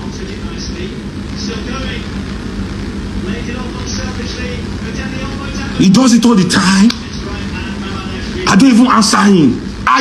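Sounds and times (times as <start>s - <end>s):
steady low droning hum: 0.0s - 10.0s.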